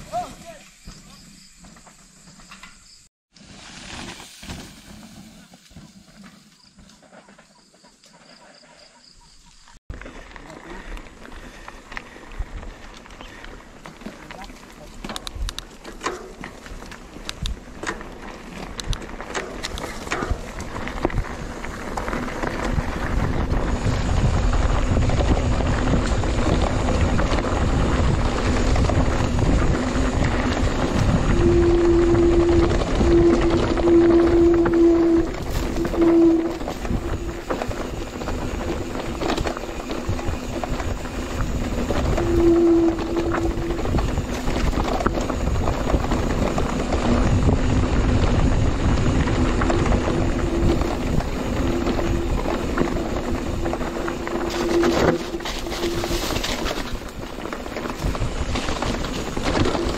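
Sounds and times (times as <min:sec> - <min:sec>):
mountain bike rattles and knocks: 0:00.0 - 0:08.8, 0:09.9 - 0:59.9
wind rumbling on microphone: 0:09.9 - 0:59.9
buzzing tone: 0:28.8 - 0:39.3, 0:40.4 - 0:57.0.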